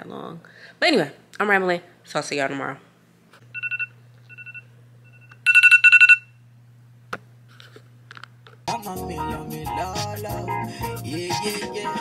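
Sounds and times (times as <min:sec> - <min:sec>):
phone alarm beeps: 0:03.5 - 0:06.4.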